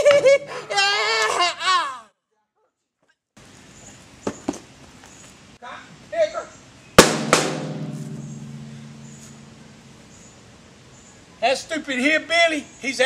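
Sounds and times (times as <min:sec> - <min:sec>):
sharp ringing hits: 0:07.0 - 0:10.4.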